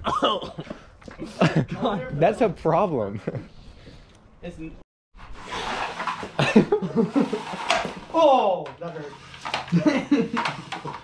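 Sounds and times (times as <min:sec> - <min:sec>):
man laughing: 0:00.1 - 0:02.1, 0:06.4 - 0:07.5, 0:09.7 - 0:11.0.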